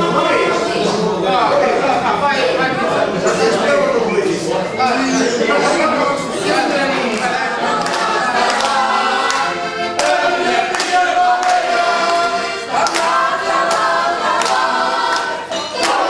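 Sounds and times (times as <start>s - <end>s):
crowd singing together: 0.0s - 16.0s
accordion playing: 1.8s - 16.0s
crowd clapping in time: 7.1s - 16.0s.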